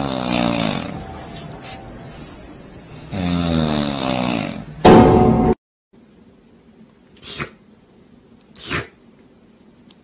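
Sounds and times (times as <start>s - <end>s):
faint room noise: 6.0s - 10.0s
kitten sneezing: 8.6s - 9.0s.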